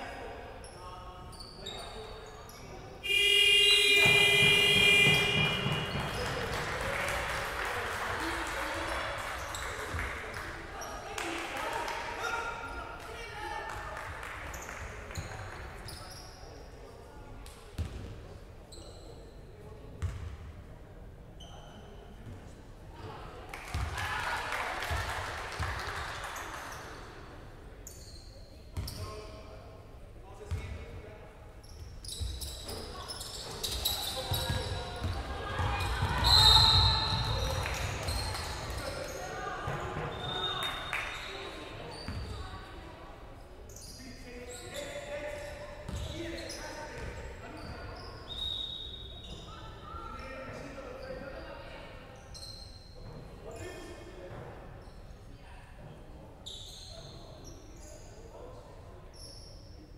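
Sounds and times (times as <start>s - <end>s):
basketball bouncing on wooden court: 4.0s - 6.4s.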